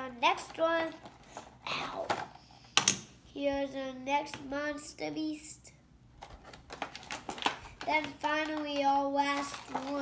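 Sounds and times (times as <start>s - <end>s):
plastic tray clicking and crinkling: 6.2s - 10.0s.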